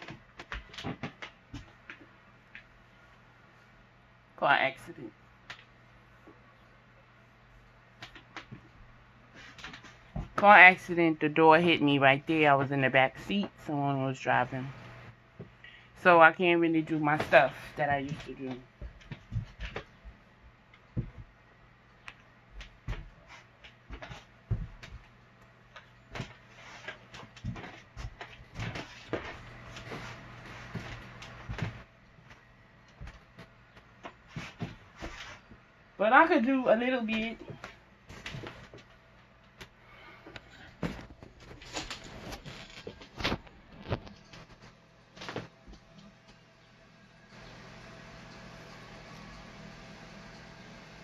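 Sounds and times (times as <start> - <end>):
low steady hum: 0.0 - 51.0
soft thumps and rustles of dancing: 18.8 - 20.2, 20.9 - 21.4, 22.5 - 25.1.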